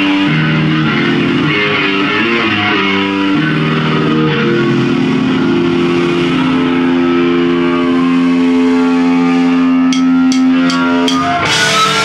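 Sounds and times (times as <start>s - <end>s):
distorted electric guitar chord: 0.0s - 12.0s
drumstick clicks: 9.9s - 11.4s.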